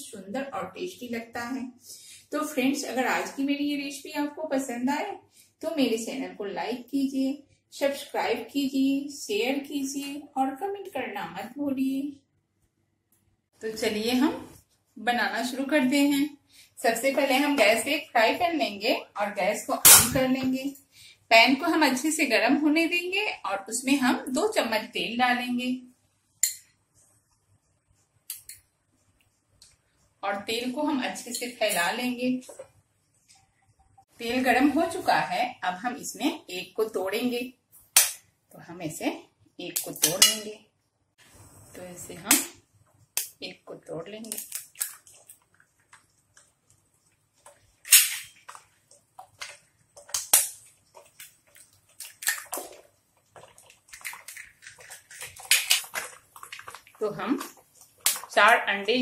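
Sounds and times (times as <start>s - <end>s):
eggs dropping into oil: 44.2s - 58.7s
spoon cracking egg shell: 44.3s - 46.5s, 49.2s - 56.8s
eggs sizzling in hot oil: 44.3s - 59.0s.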